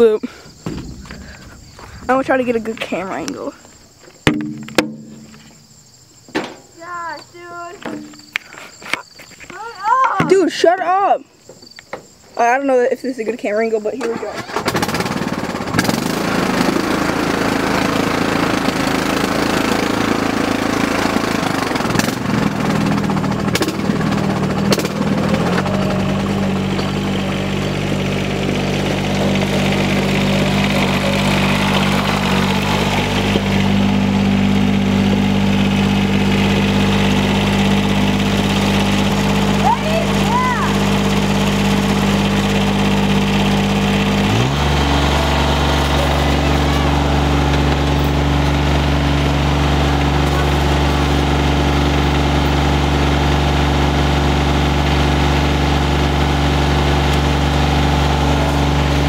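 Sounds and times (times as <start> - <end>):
riding lawn mower engines running: 0.0 - 11.2, 11.8 - 59.0.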